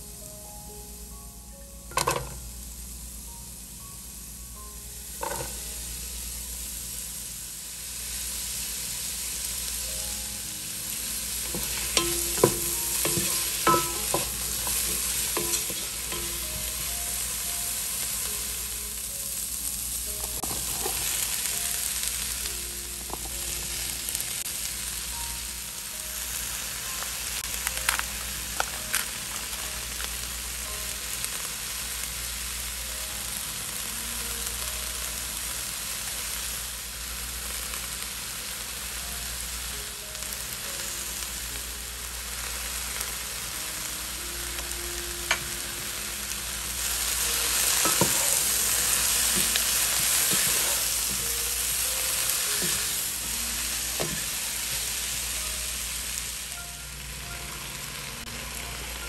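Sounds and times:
vegetables sizzling in a pan: 0.0s - 59.0s
utensil knocking on pan: 11.5s - 16.6s.

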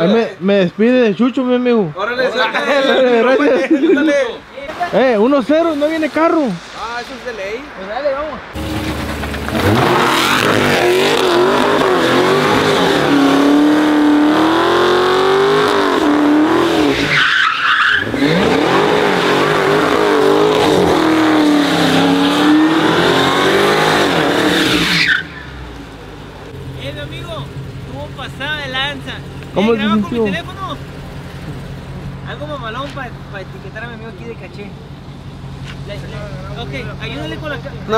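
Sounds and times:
car engine at high revs: 8.6s - 17.1s, 18.0s - 25.1s
tyres squealing: 8.8s - 25.6s.

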